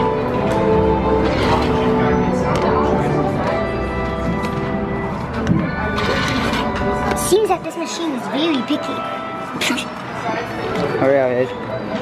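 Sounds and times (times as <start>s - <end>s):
arcade game machine music: 0.0s - 10.2s.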